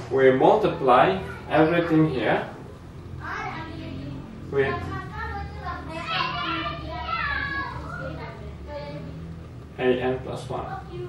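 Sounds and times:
steady low hum: 0:00.0 - 0:11.0
children calling out and playing: 0:00.6 - 0:09.4.

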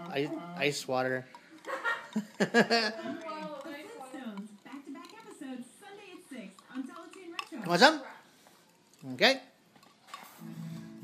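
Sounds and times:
man talking: 0:00.0 - 0:01.3, 0:09.0 - 0:09.5.

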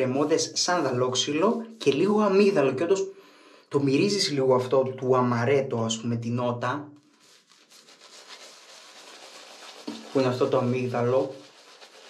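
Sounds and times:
shaving brush rubbing lather: 0:07.1 - 0:12.0.

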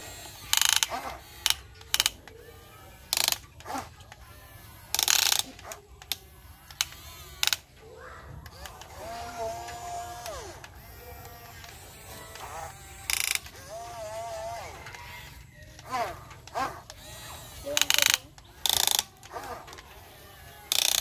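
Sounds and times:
ratcheting gear clatter: 0:00.0 - 0:07.8, 0:08.4 - 0:21.0
small electric gear motors running: 0:00.0 - 0:21.0.

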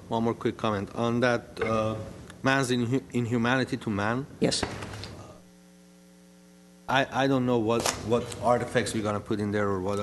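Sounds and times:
electrical mains hum: 0:00.0 - 0:10.0
man speaking: 0:00.1 - 0:04.3.

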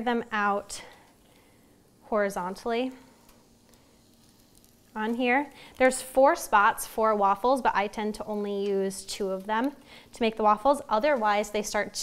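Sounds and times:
waffle dough sizzling: 0:00.0 - 0:12.0.

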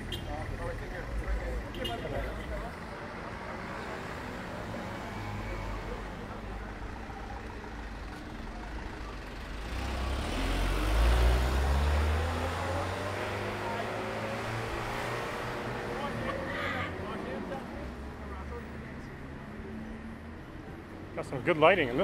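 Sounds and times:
street traffic: 0:00.0 - 0:22.0
truck driving past: 0:07.4 - 0:16.3.

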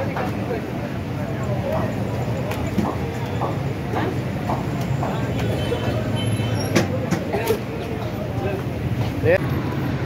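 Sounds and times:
background chatter: 0:00.0 - 0:09.9
low street rumble: 0:00.0 - 0:10.0.

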